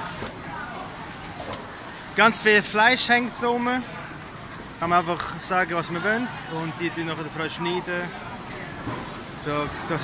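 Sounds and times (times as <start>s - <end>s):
background murmur: 0.0s - 10.0s.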